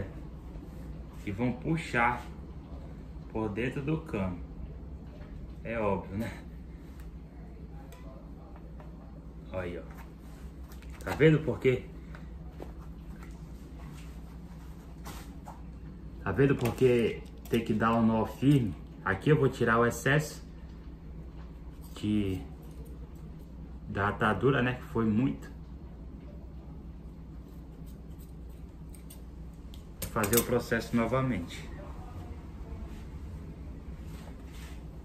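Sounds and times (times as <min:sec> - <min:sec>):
low room hum: 0:00.0 - 0:35.0.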